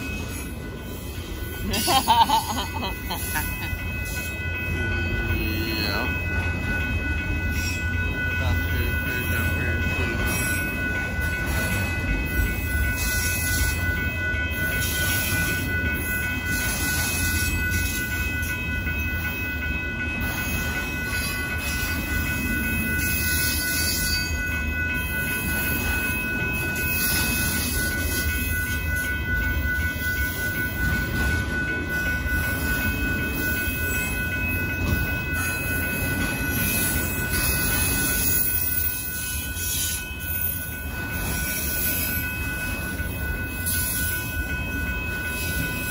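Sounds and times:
steady high-pitched tones: 0.0s - 45.9s
train wheels rumbling on rail: 0.0s - 45.9s.

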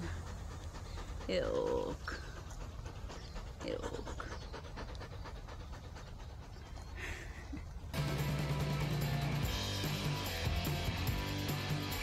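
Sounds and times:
dog panting: 0.0s - 8.0s.

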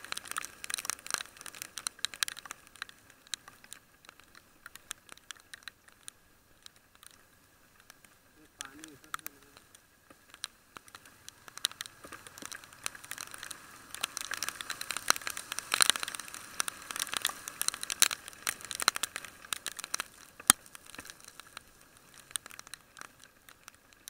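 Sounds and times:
rain striking camera housing: 0.0s - 24.0s.

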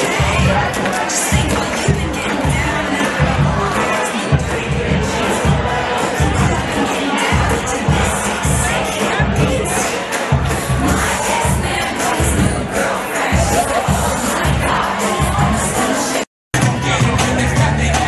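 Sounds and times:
crowd shouting and cheering: 0.0s - 18.0s
loud dance music: 0.0s - 18.0s.

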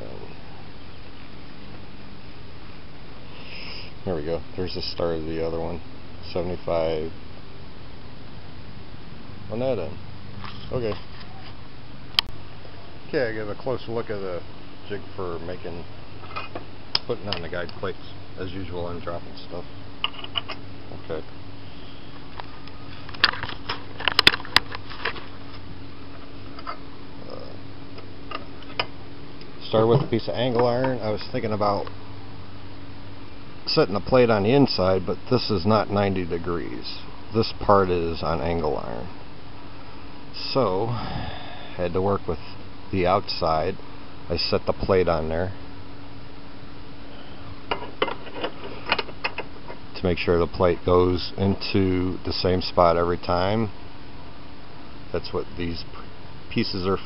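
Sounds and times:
steady low hum: 0.0s - 57.0s
sharp clicks and knocks: 47.7s - 49.8s.

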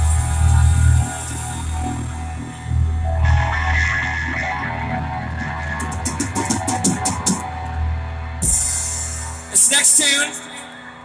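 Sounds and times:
bass guitar: 0.0s - 9.8s
electric guitars: 0.0s - 11.0s
drum kit: 5.6s - 7.5s, 8.4s - 10.0s.

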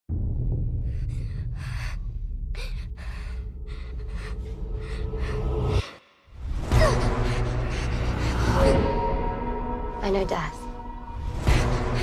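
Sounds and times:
low rumbling drone: 0.1s - 12.0s
woman panting heavily: 0.9s - 9.4s, 11.3s - 12.0s.

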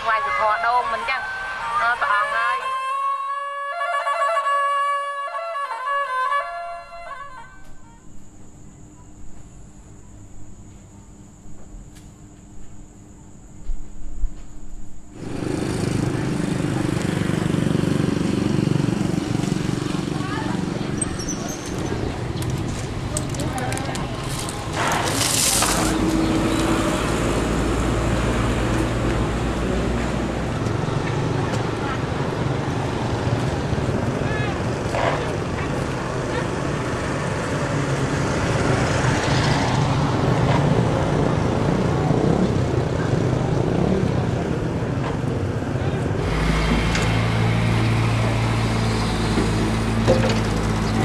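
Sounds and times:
vehicle engine and road noise: 15.1s - 51.0s.

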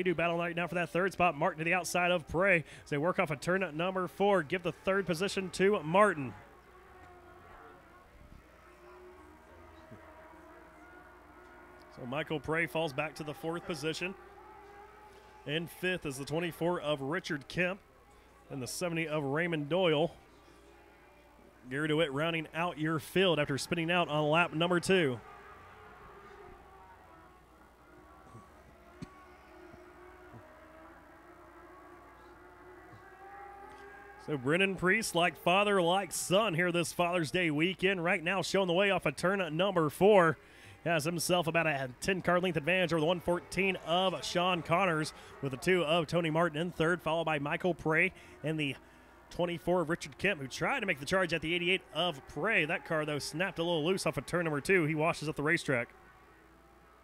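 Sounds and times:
race car engines droning: 0.0s - 57.0s.

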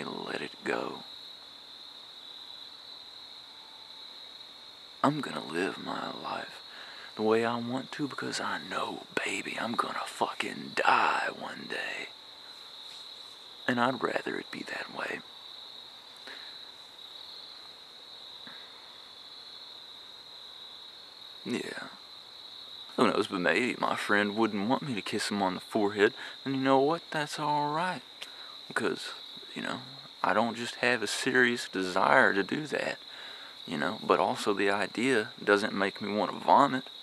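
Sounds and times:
crickets chirring: 0.0s - 37.0s.

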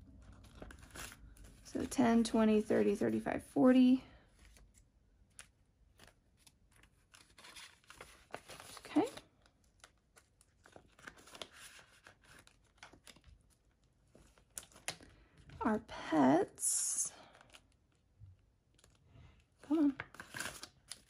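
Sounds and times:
banknotes rustling: 4.2s - 15.2s.

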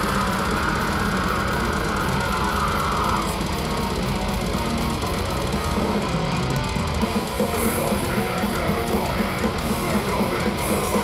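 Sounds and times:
bass: 0.0s - 11.0s
distorted electric guitars: 0.0s - 11.0s
drums: 0.0s - 11.0s.

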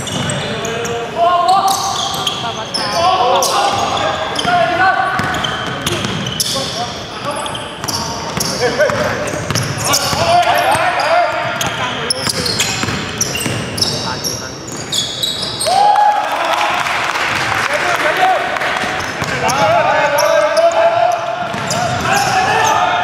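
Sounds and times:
sneakers squeaking: 0.0s - 15.9s, 18.8s - 23.0s
players calling out: 0.0s - 23.0s
basketball bouncing on wooden court: 5.2s - 6.6s, 7.8s - 14.0s, 18.9s - 23.0s.

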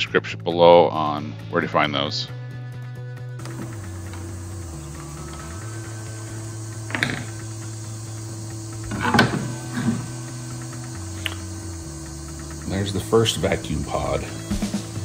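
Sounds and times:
background music with bass line: 0.0s - 15.0s.

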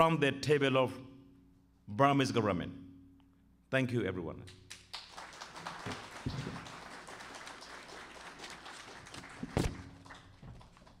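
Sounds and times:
audience applauding: 4.7s - 11.0s
loud thump near microphone: 9.5s - 9.9s.

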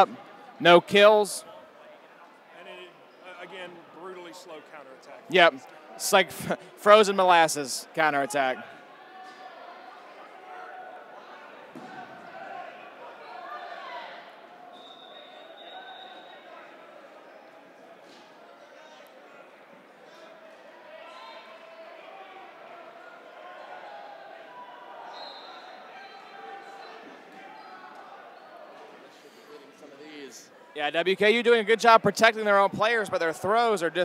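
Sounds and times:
balls bouncing on gym floor: 11.7s - 12.1s.

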